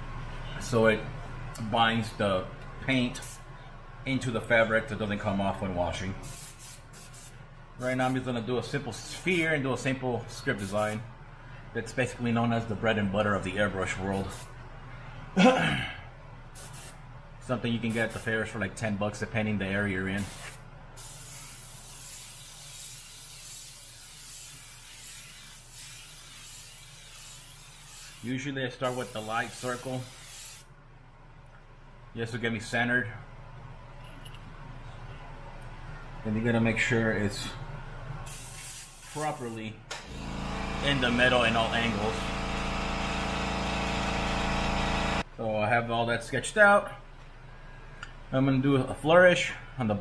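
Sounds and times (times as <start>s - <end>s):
air compressor motor hum: 0.0s - 4.0s, 6.2s - 8.4s, 14.1s - 14.7s, 16.6s - 17.0s, 20.2s - 30.7s, 38.2s - 45.3s
airbrush hissing: 6.2s - 8.2s, 16.6s - 17.0s, 20.2s - 30.7s, 38.3s - 39.6s.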